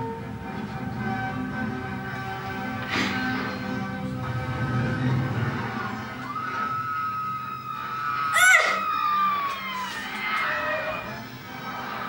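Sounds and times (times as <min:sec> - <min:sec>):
film soundtrack from television: 0:00.0 - 0:12.0
high cry sweeping down: 0:06.2 - 0:11.1.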